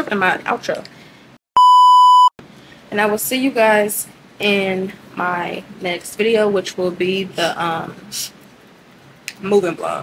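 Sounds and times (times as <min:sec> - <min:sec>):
high-pitched censor beep: 0:01.6 - 0:02.3.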